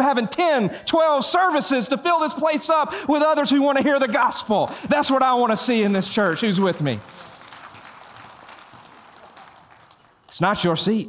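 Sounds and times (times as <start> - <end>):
congregation applauding: 5.1 - 10.7.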